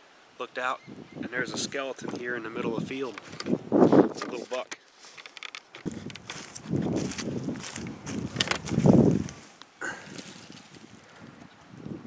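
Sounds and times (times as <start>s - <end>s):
dry grass and leaves crunching: 3.0s - 11.3s.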